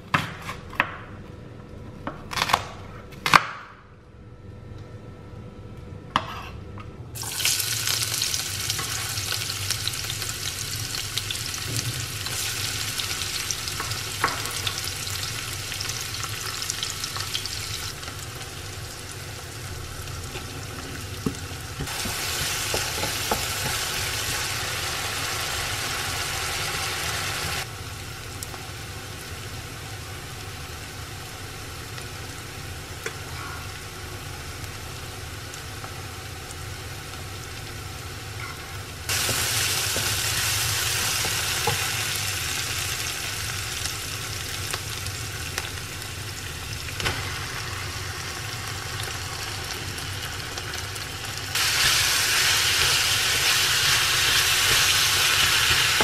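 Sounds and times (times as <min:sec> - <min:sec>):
steady low hum: 0:00.0 - 0:07.2
onion sizzling in oil: 0:07.2 - 0:56.0.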